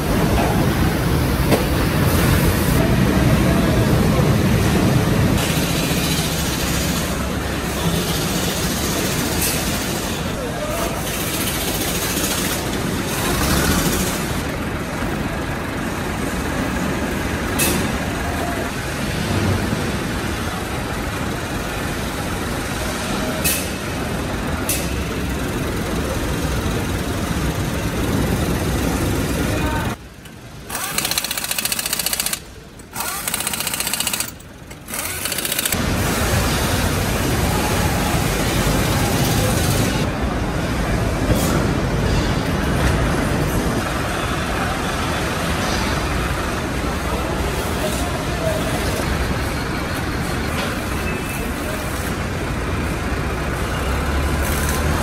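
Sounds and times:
sharp metallic clicks: 0:30.2 - 0:35.8
steady mechanical din: 0:30.6 - 0:37.4.

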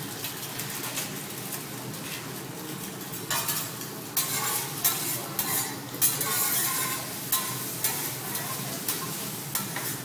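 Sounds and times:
egg sizzling on a griddle: 0:00.0 - 0:10.0
metal spatula scraping and tapping: 0:02.9 - 0:10.0.

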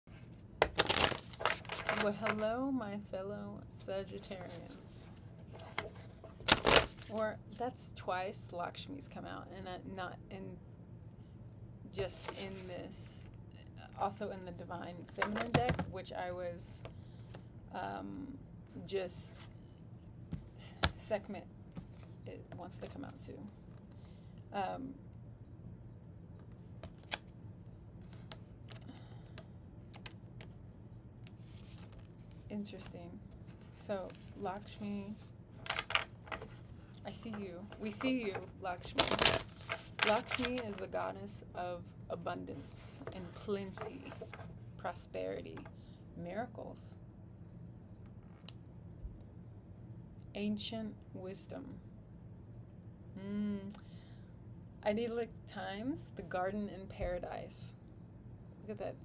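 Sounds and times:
faint low hum: 0:00.0 - 0:59.0
cards shuffling: 0:00.6 - 0:02.4, 0:05.5 - 0:07.2, 0:35.1 - 0:40.9, 0:43.0 - 0:44.5.

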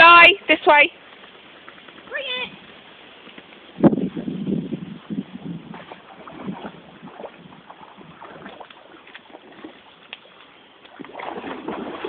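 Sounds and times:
dog splashing through water: 0:05.7 - 0:12.0.

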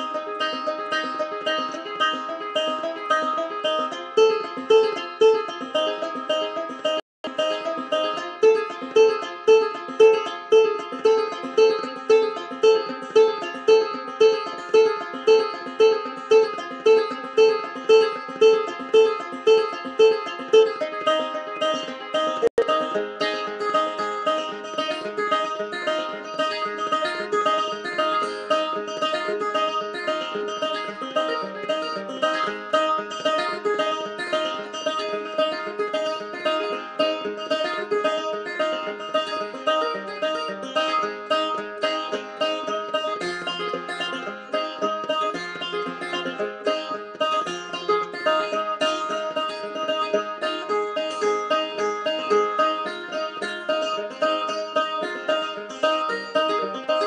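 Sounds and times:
fingerpicked banjo-guitar: 0:00.0 - 0:57.0.

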